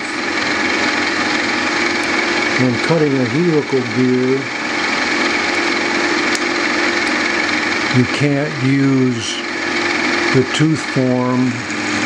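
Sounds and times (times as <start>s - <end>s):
milling machine spindle humming: 0.0s - 12.0s.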